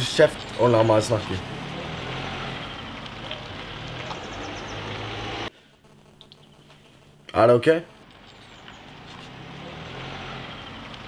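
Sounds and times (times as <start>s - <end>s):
low engine-like rumble: 0.0s - 5.5s.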